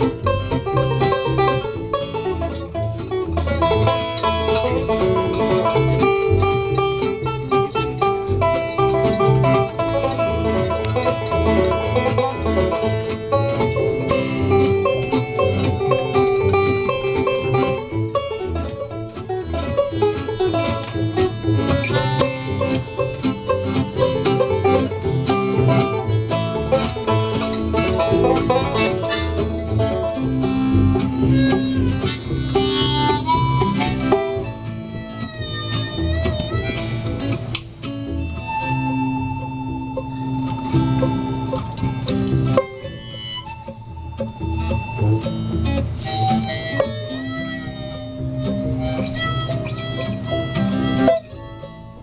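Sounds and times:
acoustic guitar picking: 0.0 - 52.0
banjo: 0.0 - 52.0
harmonica long held notes: 0.0 - 52.0
mandolin: 0.0 - 52.0
upright bass: 0.0 - 52.0.

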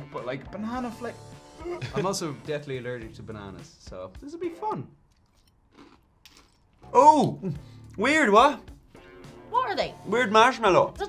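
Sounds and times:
spoons eating cereal from bowls: 5.2 - 6.8.

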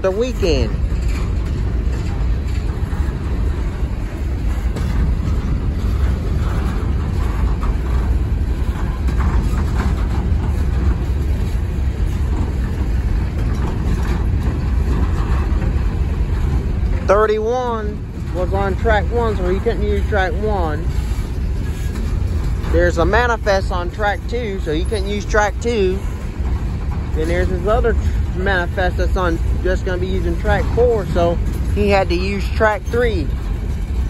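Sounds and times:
steel wheels rumbling on rails: 0.0 - 34.0.

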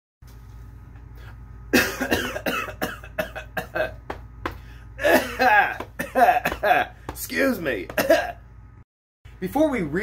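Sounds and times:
man coughing: 1.7 - 4.1, 5.0 - 7.1, 7.8 - 8.5.

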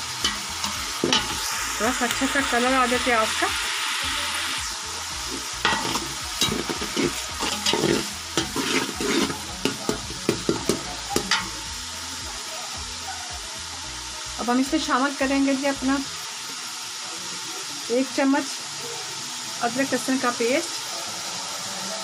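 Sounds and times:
onions sizzling in a pot: 0.0 - 22.0
metal spatula scraping a pot: 5.3 - 11.5.

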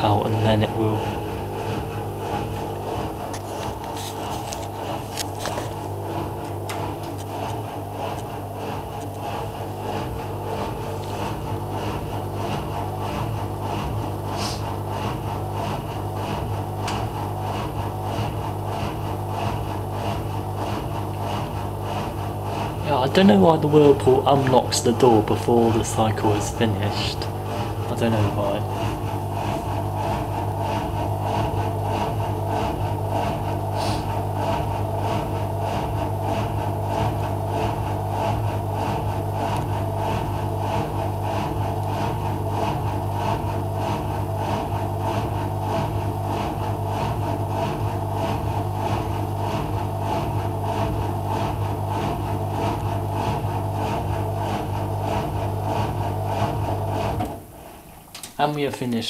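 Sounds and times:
washing machine drain pump humming: 0.0 - 59.0.

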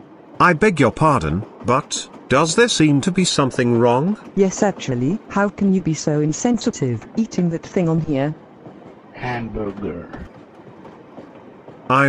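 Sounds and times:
passenger train running: 0.0 - 12.0.

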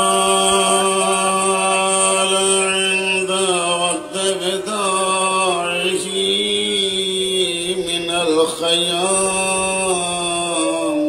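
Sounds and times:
man chanting: 0.0 - 11.0
steady low hum: 0.0 - 11.0.

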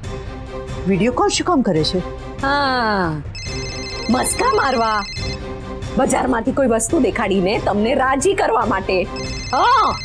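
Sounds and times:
mobile phone ringtone: 3.3 - 5.6, 9.1 - 10.0.

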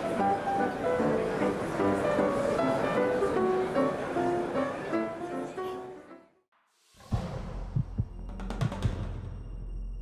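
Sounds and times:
deep drum-like thumps: 7.0 - 9.6.

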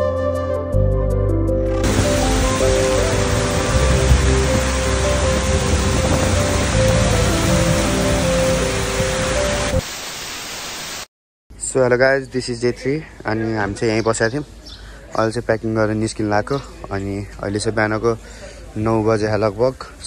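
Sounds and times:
music with long held notes: 0.0 - 9.8
heavy rain falling: 1.8 - 11.1.

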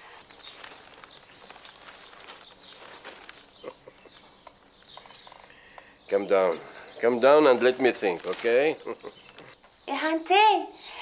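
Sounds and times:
faint bird chirps: 0.0 - 11.0
faint outdoor ambience: 0.0 - 11.0.

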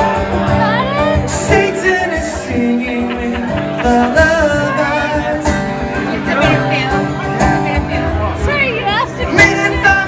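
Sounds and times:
strummed acoustic guitar: 0.0 - 10.0
man singing: 1.1 - 6.8, 9.2 - 10.0.

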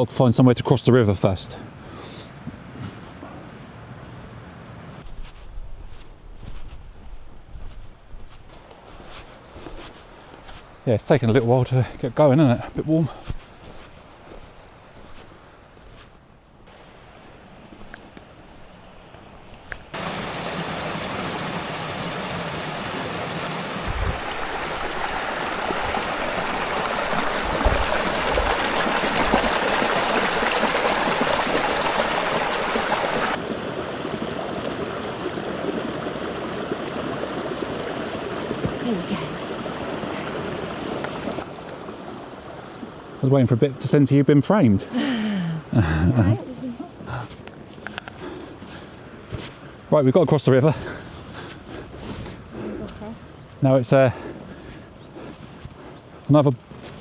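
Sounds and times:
river water rushing over boulders: 16.7 - 43.5.

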